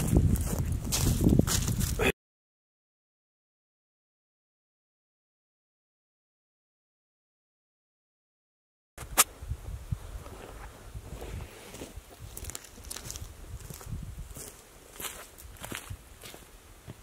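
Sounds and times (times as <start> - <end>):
footsteps on dry leaves: 0.0 - 2.0, 11.1 - 17.0
sharp click: 9.0 - 9.3.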